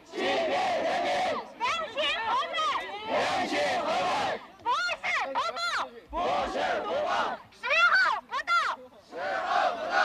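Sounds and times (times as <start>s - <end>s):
crowd chanting in unison: 0.0s - 4.5s, 6.1s - 7.5s, 9.1s - 10.0s
woman shouting through megaphone: 1.4s - 3.2s, 4.6s - 6.0s, 7.3s - 8.9s.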